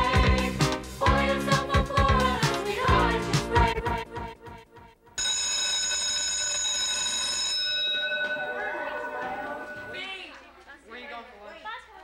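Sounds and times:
music: 0.0 - 5.2
electric school bell ringing: 5.2 - 10.4.

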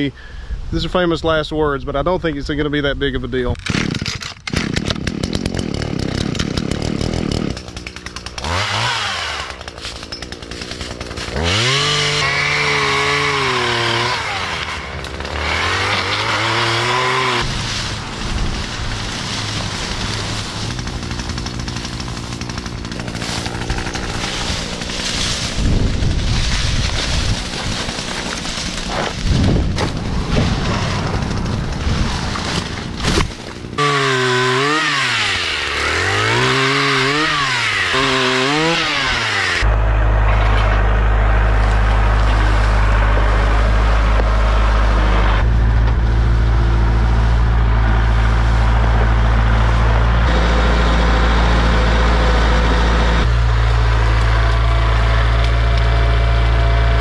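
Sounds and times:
pole saw revving: 3.6 - 39.8, 40.4 - 57.0.

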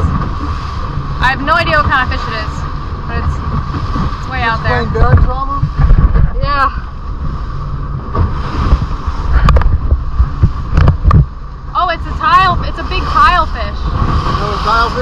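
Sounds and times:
motorboat engine and hull rumble: 0.0 - 15.0
wind buffeting microphone: 0.0 - 15.0
voices: 1.2 - 3.4, 11.8 - 15.0.

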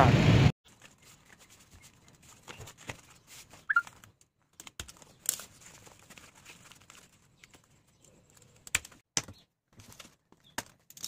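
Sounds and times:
banner sheet rustling and crinkling: 0.6 - 11.0.

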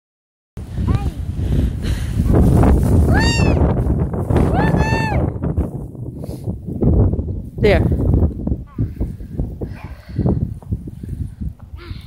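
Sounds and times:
child squealing: 3.1 - 3.6.

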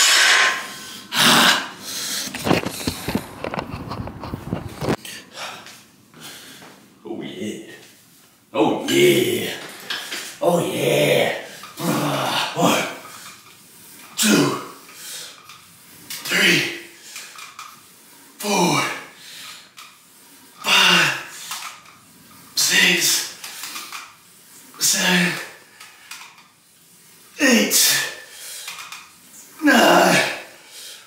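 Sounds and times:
cable pulldown machine: 0.0 - 5.0, 9.2 - 31.0
man grunting with effort: 10.5 - 13.0, 29.6 - 30.5.

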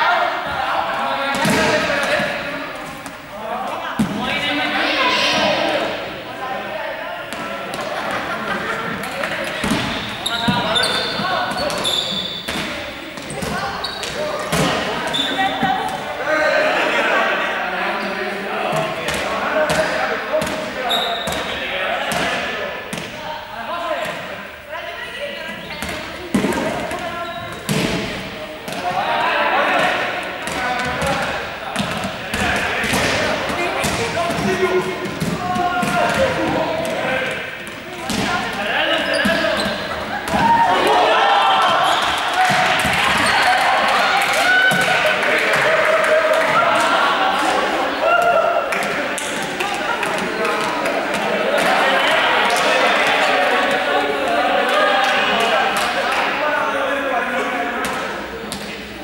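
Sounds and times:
students talking and calling out: 0.0 - 59.0.

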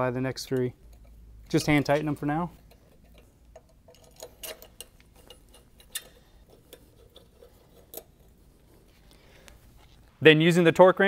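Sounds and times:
metal parts clicking and tapping: 0.5 - 8.3.

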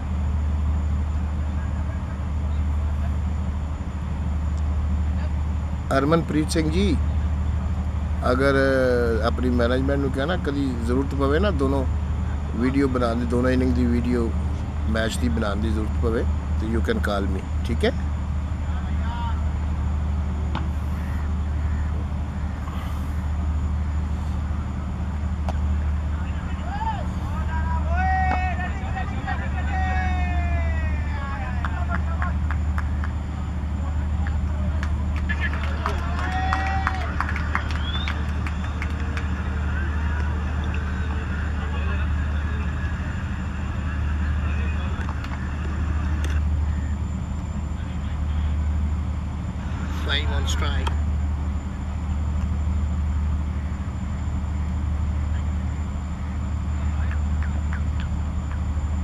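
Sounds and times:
low outdoor rumble: 0.0 - 59.0
distant players shouting: 18.0 - 51.6.

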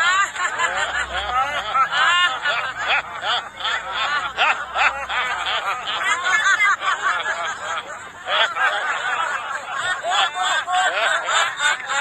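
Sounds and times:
women laughing: 0.0 - 12.0.

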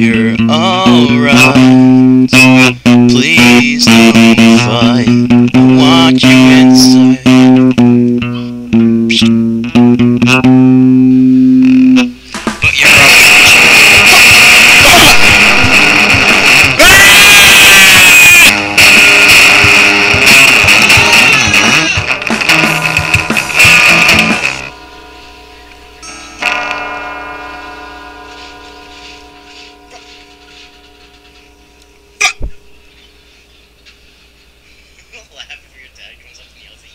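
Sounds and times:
guitar chord ringing: 0.0 - 33.8
emo rock song with guitar and bass: 0.0 - 34.4.

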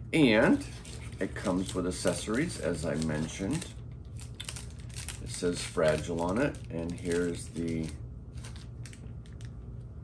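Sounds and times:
low steady hum: 0.0 - 10.0
plastic bag crinkling: 0.5 - 9.6.

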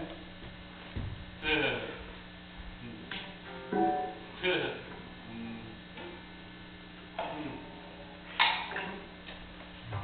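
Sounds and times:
amplifier electrical hum: 0.0 - 10.0.

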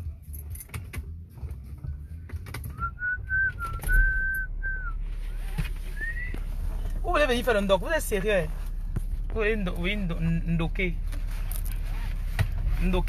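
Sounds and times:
low steady rumble: 0.0 - 13.0
person whistling: 2.7 - 5.0, 5.9 - 6.4.

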